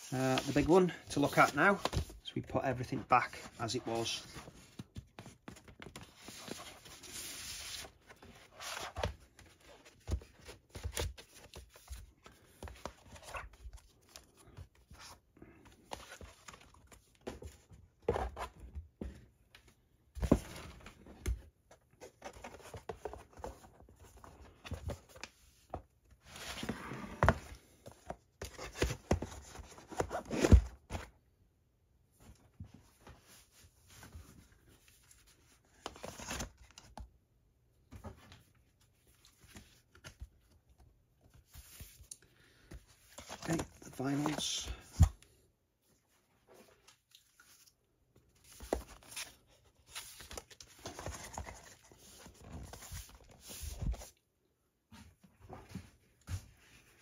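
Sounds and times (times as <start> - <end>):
card and paper rustling: 0.0 - 19.1, 20.2 - 31.1, 33.0 - 37.0, 41.2 - 45.2, 46.4 - 54.1.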